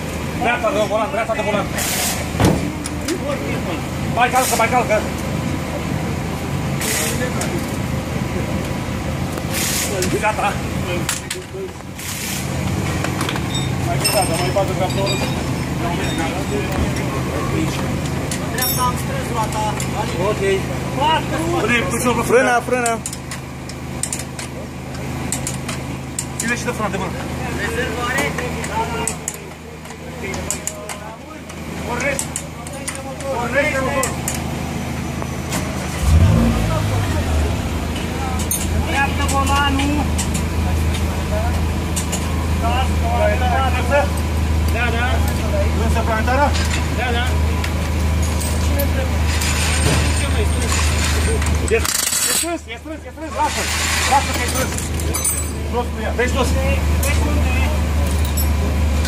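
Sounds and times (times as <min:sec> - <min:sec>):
car engine starting and idling: 0:00.0 - 0:59.0
voices: 0:00.0 - 0:59.0
metallic tool clinks: 0:13.6 - 0:16.3.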